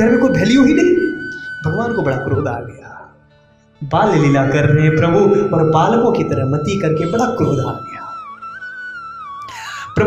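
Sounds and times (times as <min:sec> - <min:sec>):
wavering high melodic line: 0:00.0 - 0:03.1, 0:04.1 - 0:09.2.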